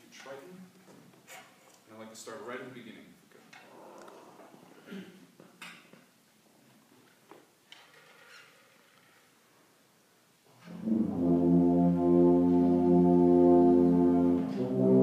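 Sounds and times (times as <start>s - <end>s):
brass ensemble holding chords: 10.6s - 15.0s.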